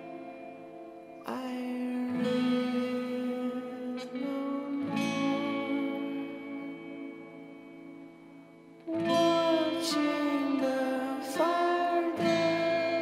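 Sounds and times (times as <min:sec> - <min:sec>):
acoustic guitar strumming: 0:00.0 - 0:13.0
man singing: 0:01.2 - 0:07.0, 0:08.9 - 0:13.0.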